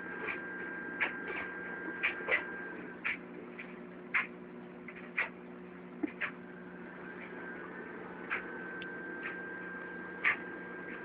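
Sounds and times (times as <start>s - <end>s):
aquarium pump humming: 0.0s - 11.0s
faint high whine: 0.0s - 11.0s.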